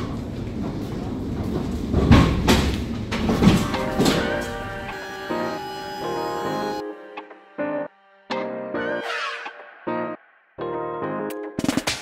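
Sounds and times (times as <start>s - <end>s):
pallet jack rumbling and clattering: 0.0s - 5.0s
background music with held notes: 3.6s - 11.6s.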